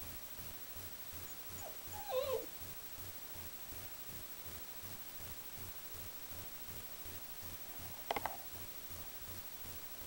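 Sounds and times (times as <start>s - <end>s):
puppy whimpering: 1.6s - 2.5s.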